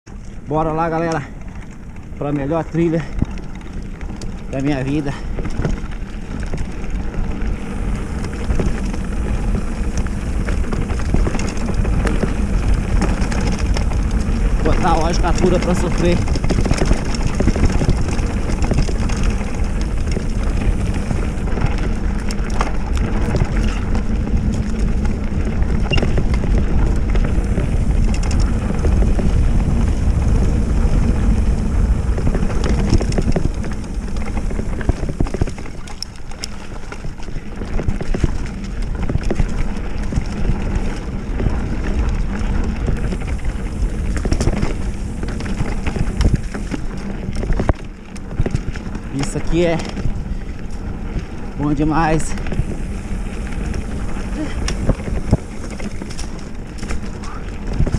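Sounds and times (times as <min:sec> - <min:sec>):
bike parts rattling: 0:00.1 - 0:57.9
tyres rolling over dirt: 0:00.1 - 0:57.9
wind buffeting microphone: 0:00.1 - 0:57.9.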